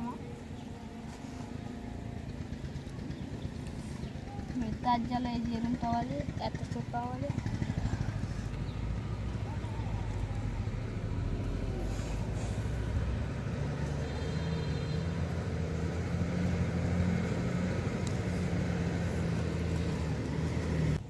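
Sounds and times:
heavy vehicle engine drone: 0.0s - 21.0s.

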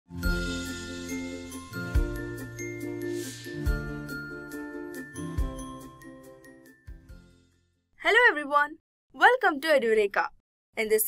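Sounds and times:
swell of hiss: 3.0s - 3.8s.

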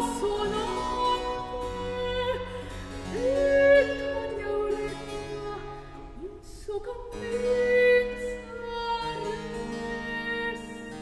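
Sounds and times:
woman singing classical: 0.0s - 11.0s.

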